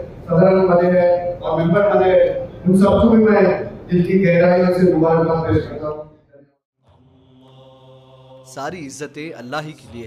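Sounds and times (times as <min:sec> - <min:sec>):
man speaking: 0:08.5 - 0:10.0.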